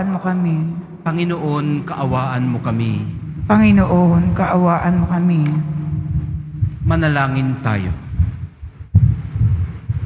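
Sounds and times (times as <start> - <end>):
low uneven thumping rumble: 1.9 - 10.0.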